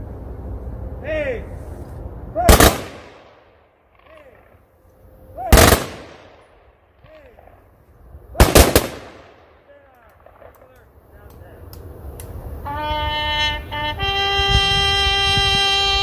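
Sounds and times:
person shouting commands: 1.0s - 1.6s, 2.3s - 2.7s
rifle volleys: 2.5s - 3.4s, 5.5s - 6.4s, 8.4s - 9.5s.

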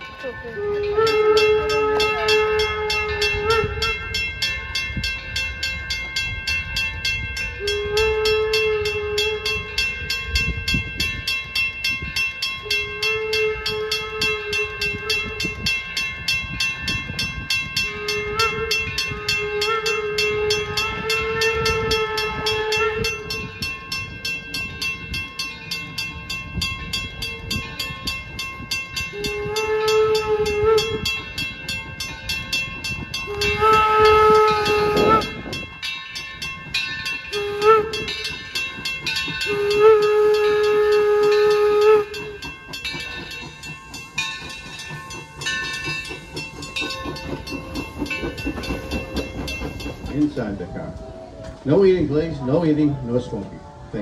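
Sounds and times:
rhythmic train clatter: 0.0s - 54.0s
steam whistle blasts: 0.4s - 4.4s, 7.4s - 10.2s, 12.6s - 15.8s, 17.7s - 23.8s, 29.0s - 31.5s, 33.1s - 35.9s, 37.1s - 43.2s.

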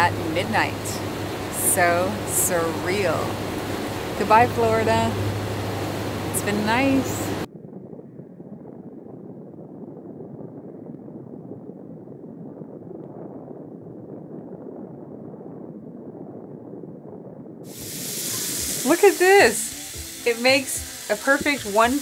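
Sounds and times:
muffled background rush: 0.0s - 7.5s.

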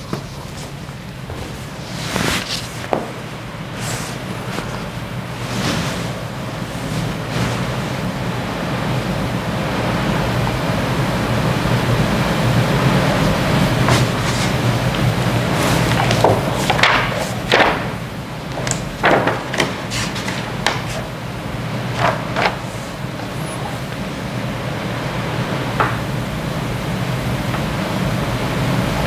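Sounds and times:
paper rustling: 0.0s - 8.1s, 13.1s - 24.3s
hiss and low hum: 0.0s - 29.0s.

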